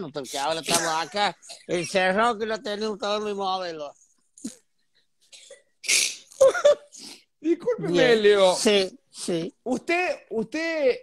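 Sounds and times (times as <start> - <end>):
man laughing: 6.4 - 6.9.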